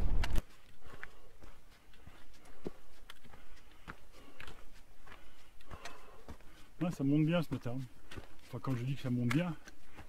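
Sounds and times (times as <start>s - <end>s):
footsteps on rocky shale trail: 0.0s - 10.0s.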